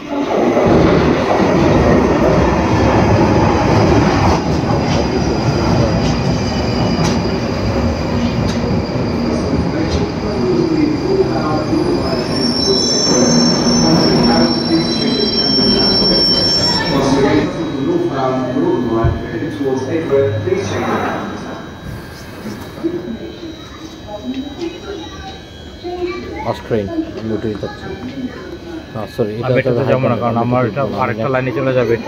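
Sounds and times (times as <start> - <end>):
train wheels rumbling on rails: 0.0 - 20.5
high brake squeal: 5.7 - 26.7.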